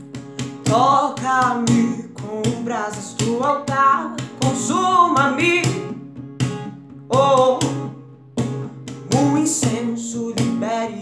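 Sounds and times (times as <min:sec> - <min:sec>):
strummed acoustic guitar: 0:00.0 - 0:11.0
woman singing worship song: 0:00.7 - 0:05.9, 0:07.1 - 0:07.8.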